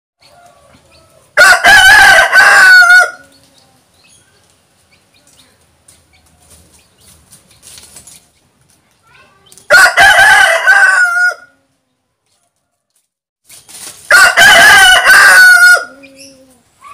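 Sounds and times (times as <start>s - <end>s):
rooster crowing: 0.3s - 3.3s, 9.7s - 11.6s, 14.1s - 16.2s.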